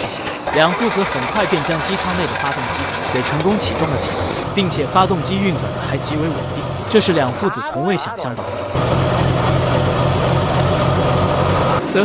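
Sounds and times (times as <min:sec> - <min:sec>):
pickup engine idling: 0:00.4 - 0:11.8.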